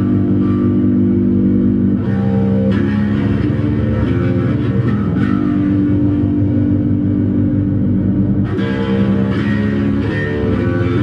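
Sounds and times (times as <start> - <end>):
electric bass drone: 0.0 - 11.0.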